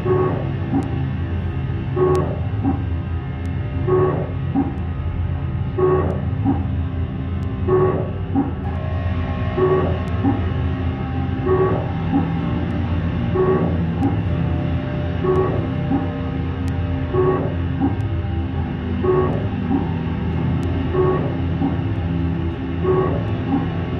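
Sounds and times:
looped bass notes: 0.0 - 23.9
low bass drone: 0.0 - 23.9.

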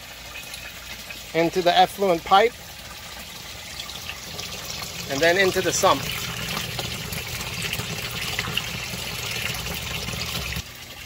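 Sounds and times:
water pouring and splashing: 0.0 - 11.0.

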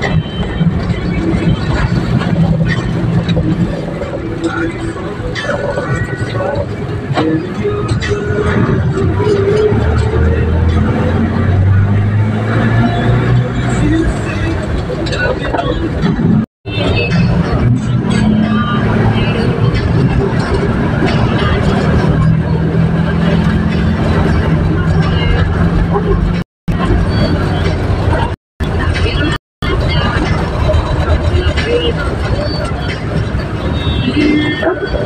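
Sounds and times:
road noise: 0.0 - 35.0
vehicle engine droning: 0.0 - 35.0.

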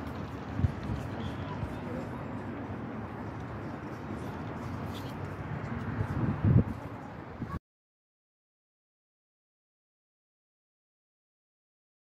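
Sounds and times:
low rumbling outdoor noise: 0.0 - 7.6.

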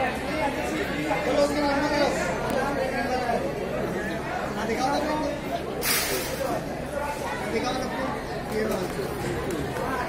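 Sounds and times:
indistinct chatter of people: 0.0 - 10.0.

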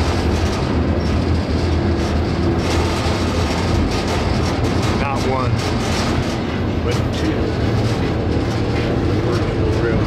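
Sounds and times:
faint clatter: 0.0 - 10.0
train wheels rumbling on rails: 0.0 - 10.0.

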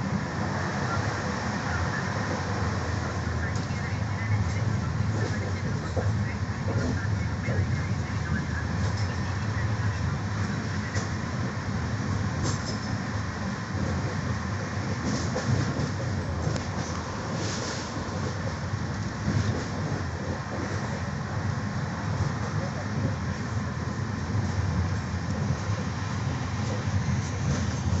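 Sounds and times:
train wheels rumbling on rail: 0.0 - 28.0
sharp train rattles: 12.2 - 13.2.

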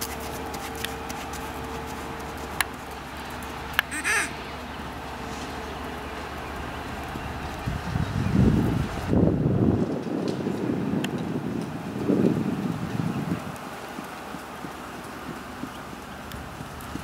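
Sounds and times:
horse hoofbeats on sand: 0.0 - 3.8, 9.8 - 17.0
wind rumble on microphone: 4.7 - 17.0.

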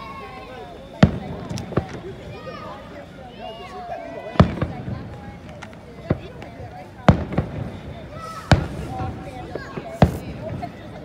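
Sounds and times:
faint firework pops: 1.0 - 2.2, 4.3 - 11.0
firework bang: 1.0 - 2.6, 4.3 - 11.0.

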